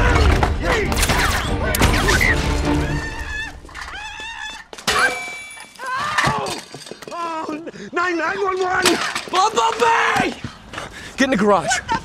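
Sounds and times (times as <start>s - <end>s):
people screaming: 0.0s - 4.8s, 5.8s - 7.6s.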